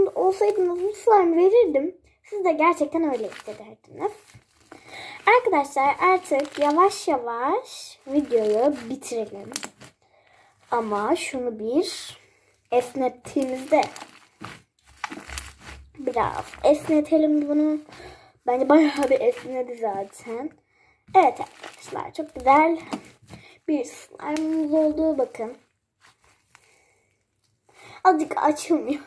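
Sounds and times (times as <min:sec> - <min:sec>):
slime squishing and crackling: 0:00.0 - 0:01.6, 0:02.4 - 0:10.0, 0:10.6 - 0:20.5, 0:21.1 - 0:26.6.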